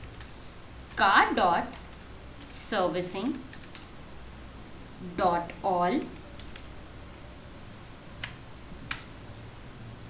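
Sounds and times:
faint low hum: 0:00.0 - 0:10.0
keyboard keystrokes: 0:03.5 - 0:03.9, 0:08.2 - 0:09.1.

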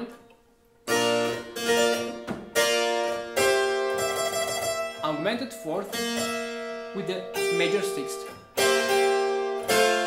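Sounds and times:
harpsichord chords: 0:00.8 - 0:10.0.

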